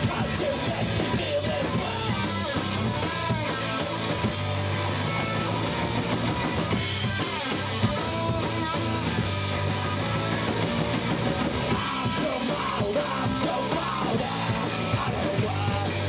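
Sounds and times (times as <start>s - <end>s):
bass drum: 0.0s - 16.0s
electric guitar: 0.0s - 16.0s
rock band playing live: 0.0s - 16.0s.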